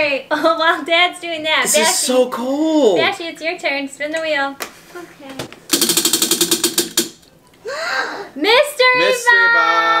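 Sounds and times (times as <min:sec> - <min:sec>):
prize wheel flapper clicking: 0:05.7 - 0:07.2.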